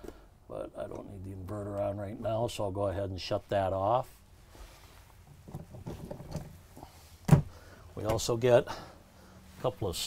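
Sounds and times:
faint taps and rustling: 5.0 - 6.6.

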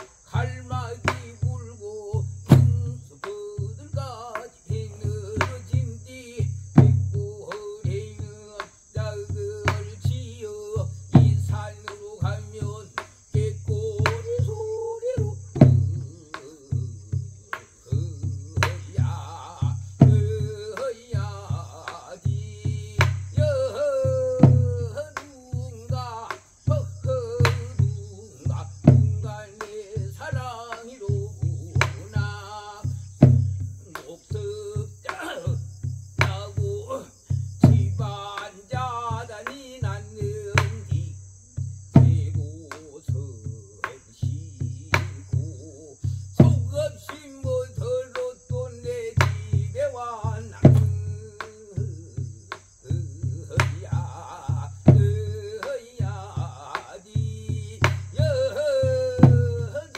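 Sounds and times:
person singing with heavy vibrato: 0.0 - 33.0, 33.6 - 41.2, 42.0 - 59.9
barrel drum beats: 0.0 - 59.9
barrel drum strokes: 6.8 - 35.2.

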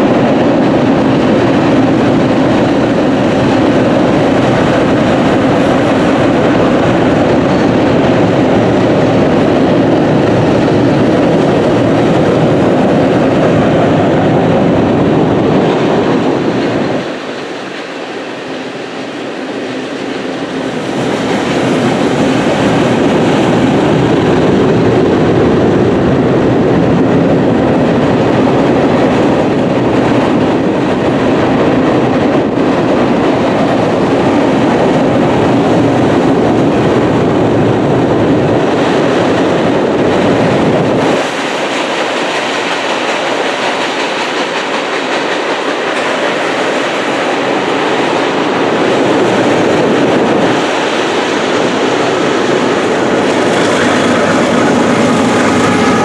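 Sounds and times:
train wheels on steel bridge: 0.0 - 56.0.

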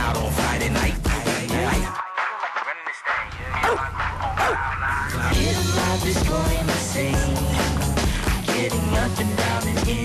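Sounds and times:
background music with low beat: 0.0 - 10.0
dog barking: 3.6 - 4.7.

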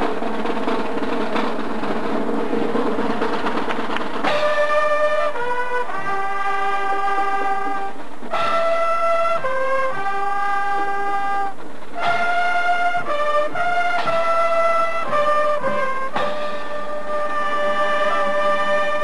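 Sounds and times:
snare drum roll: 0.0 - 19.0
sustained brass chords: 0.0 - 19.0.

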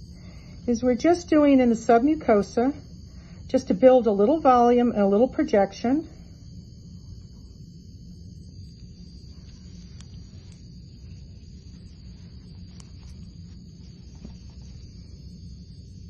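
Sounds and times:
low background hum: 0.0 - 16.0
thin high whine: 0.0 - 16.0.

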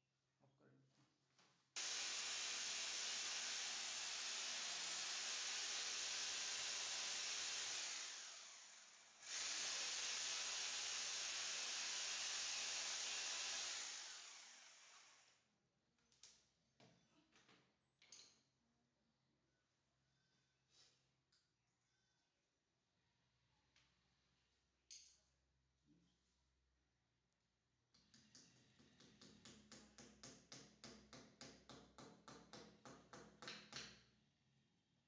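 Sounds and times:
electric drill boring into wall: 1.8 - 15.4.

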